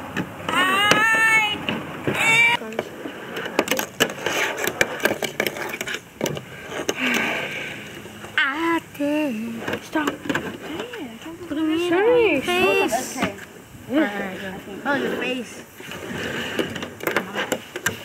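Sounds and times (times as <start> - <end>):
children's voices: 0.5 - 2.8, 8.4 - 13.3.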